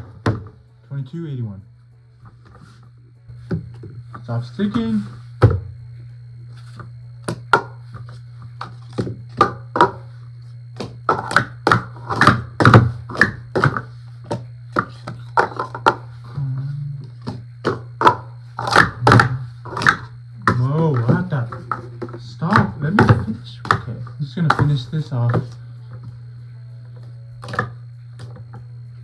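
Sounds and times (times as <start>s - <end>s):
low hum: 0.0s - 29.0s
plastic cups clacking: 8.6s - 10.1s, 10.8s - 16.4s, 17.1s - 25.6s.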